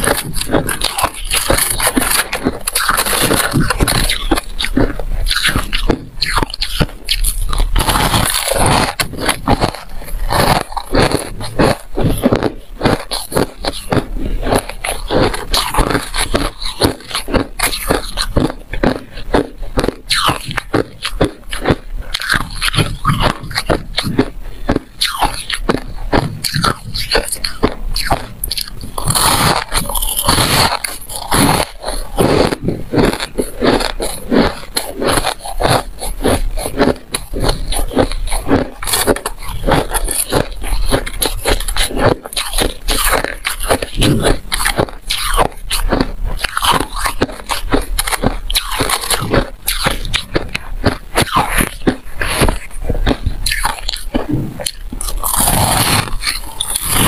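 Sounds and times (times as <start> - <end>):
ice being chewed: 0.0 - 57.0.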